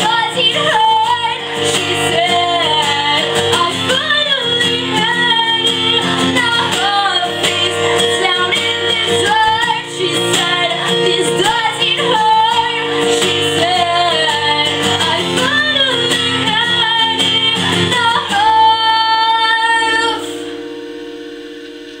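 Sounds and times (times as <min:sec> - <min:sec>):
person singing: 0:00.0 - 0:20.6
strummed acoustic guitar: 0:00.0 - 0:22.0.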